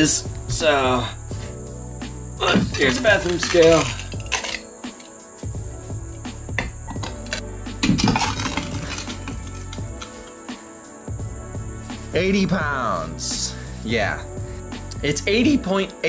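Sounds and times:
background music: 0.0 - 16.0
steel bars knocking and clinking: 2.5 - 5.1.

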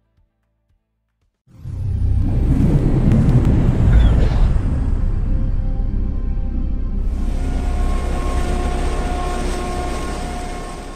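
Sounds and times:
low rumbling drone with held tones: 1.6 - 10.9.

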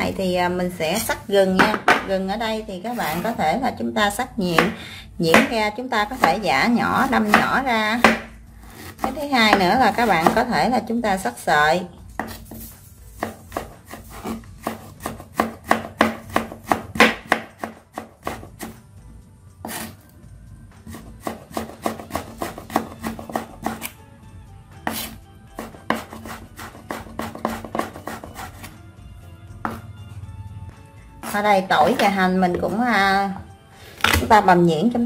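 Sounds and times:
knife tapping on wooden board: 1.6 - 2.1, 7.3 - 8.3.

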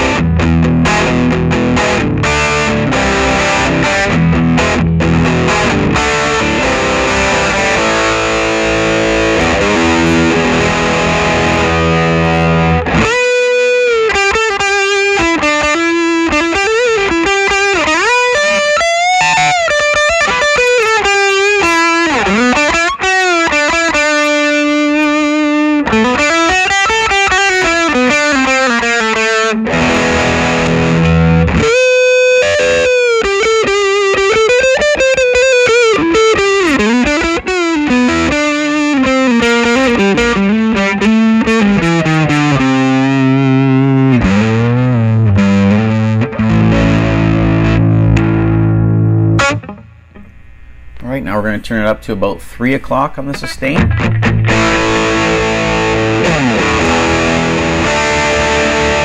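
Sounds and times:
ringing guitar chord: 0.0 - 51.6, 53.7 - 59.0
distorted electric guitar lead: 0.0 - 59.0.

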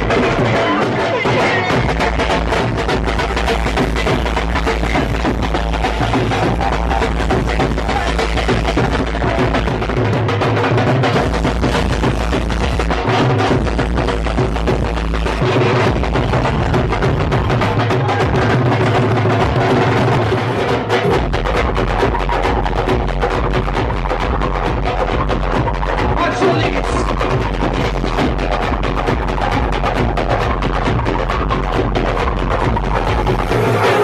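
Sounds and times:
amplified dance music: 0.0 - 34.0
drums beaten with sticks: 0.0 - 34.0.

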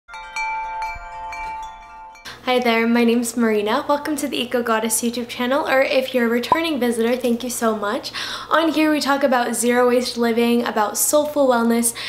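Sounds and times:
chimes ringing: 0.1 - 2.3.

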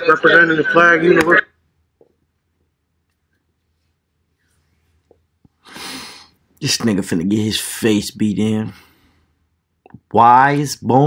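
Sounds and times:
person exhaling or snorting: 5.6 - 6.4.

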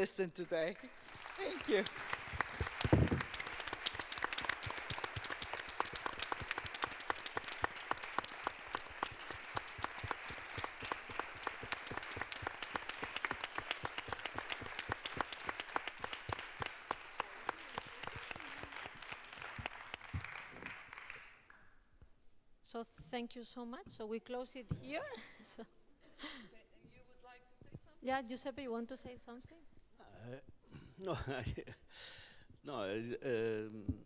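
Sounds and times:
audience applauding: 0.0 - 21.6.

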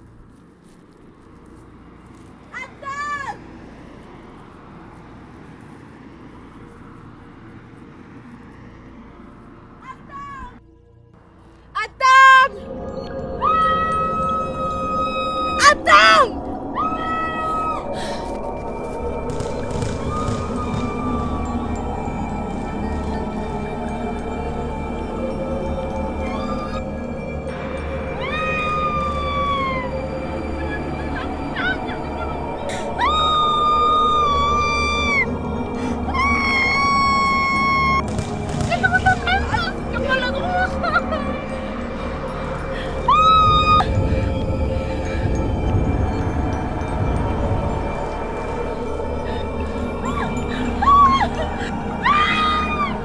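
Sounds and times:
low droning music: 0.0 - 53.0
woman shouting calls: 2.5 - 3.4, 9.8 - 10.6, 11.8 - 12.6, 15.4 - 17.8, 31.2 - 34.0, 38.7 - 40.9
young woman screaming: 13.4 - 17.9, 26.2 - 26.8, 28.1 - 35.3, 36.1 - 38.0, 43.1 - 43.9, 50.1 - 53.0.

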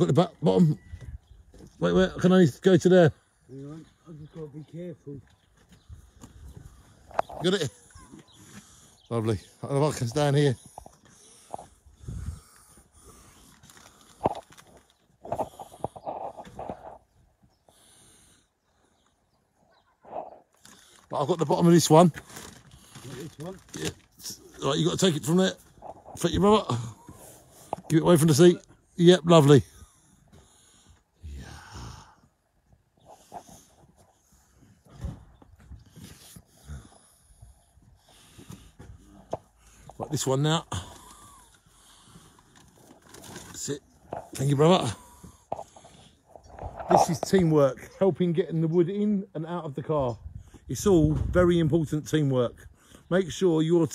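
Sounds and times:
person breathing with strain: 7.8 - 9.1, 10.6 - 14.7, 15.3 - 19.0, 29.7 - 35.0, 35.7 - 40.0, 40.7 - 43.4, 44.8 - 46.8
plastic crinkling: 13.5 - 16.7, 22.0 - 24.2, 42.2 - 44.3.

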